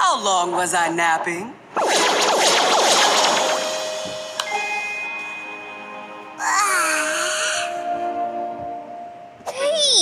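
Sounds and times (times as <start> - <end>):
soft background music: 3.8 - 10.0.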